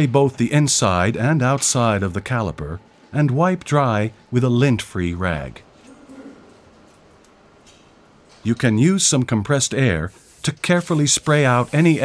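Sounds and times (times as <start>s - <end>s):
faint steady hiss: 8.3s - 12.0s.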